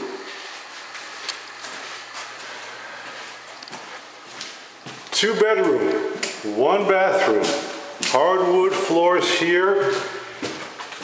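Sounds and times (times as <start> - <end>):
faint footsteps or knocks: 1.6 - 5.2.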